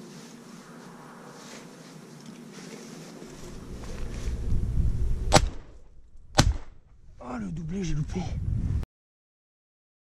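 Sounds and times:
microphone handling rumble: 3.2s - 6.4s
shotgun shots: 5.3s - 6.8s.

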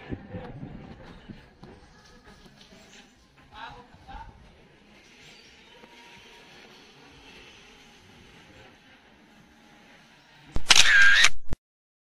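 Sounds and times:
camera shutter sound effect: 10.5s - 11.6s.

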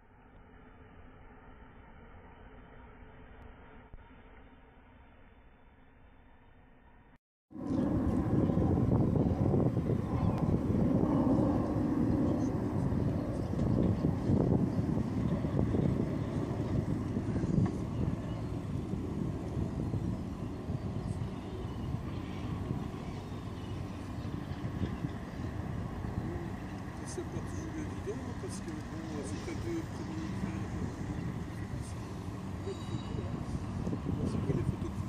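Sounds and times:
low background rumble: 0.0s - 35.0s.

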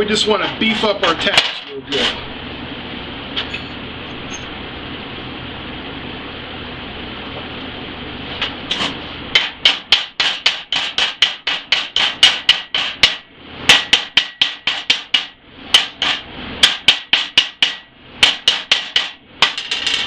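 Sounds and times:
chipping hammer striking steel: 8.7s - 19.6s.

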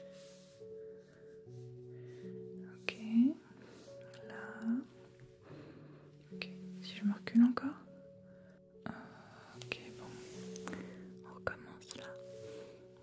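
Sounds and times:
soft background music: 0.0s - 13.0s
breathy whispering: 2.0s - 7.9s, 8.8s - 12.9s.

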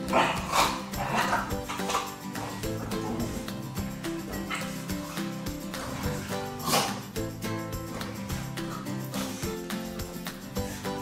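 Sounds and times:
dog barking: 0.0s - 2.2s
background music: 0.0s - 11.0s.

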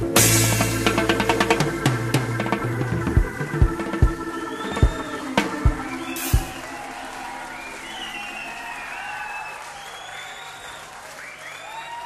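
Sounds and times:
reggae band final hit: 0.0s - 9.6s
audience applauding and cheering: 3.6s - 12.0s.

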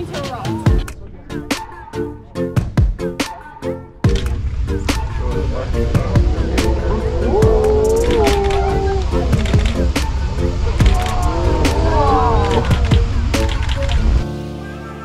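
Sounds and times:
soft music of long held notes: 0.0s - 15.0s
electronic music with sharp clicks: 4.1s - 4.4s, 9.3s - 10.1s, 12.4s - 14.3s.

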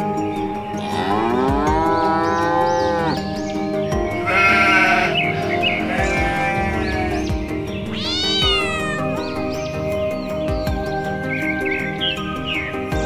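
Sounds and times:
background music: 0.0s - 13.0s
cow mooing: 0.8s - 3.2s, 4.2s - 7.3s
high wavering bleat: 4.2s - 9.2s.

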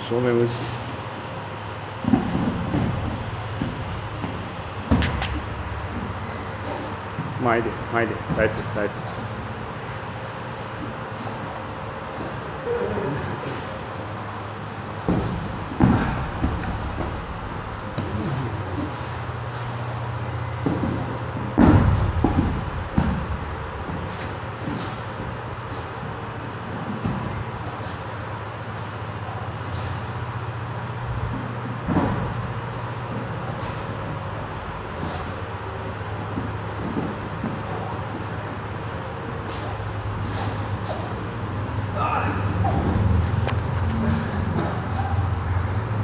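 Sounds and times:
low steady hum: 0.0s - 46.0s
body thudding on mats: 2.0s - 7.4s, 15.0s - 25.9s, 31.2s - 34.2s
thumps and scuffs on mats: 2.0s - 7.4s, 15.0s - 20.0s, 20.6s - 25.9s, 31.3s - 34.2s, 34.9s - 35.4s, 36.2s - 38.6s, 39.4s - 41.3s.

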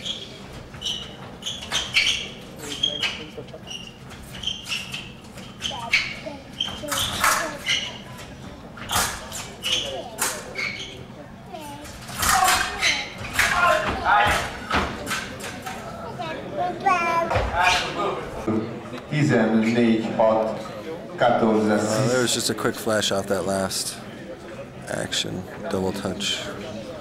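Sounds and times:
fencing blades clashing: 11.8s - 15.8s.

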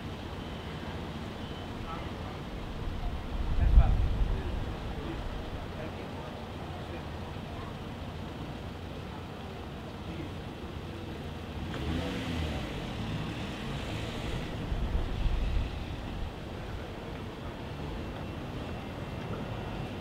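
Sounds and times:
street traffic noise: 0.0s - 20.0s
motor vehicle passing: 11.6s - 17.0s.

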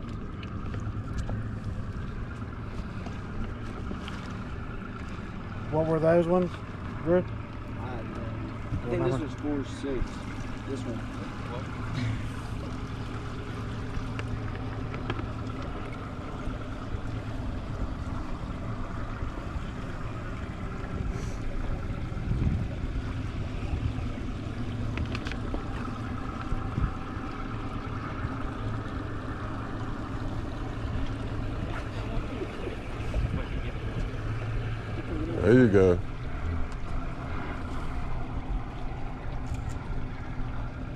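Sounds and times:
lapping water: 0.0s - 40.9s
outboard motor idling: 0.0s - 40.9s
wind: 0.0s - 40.9s.

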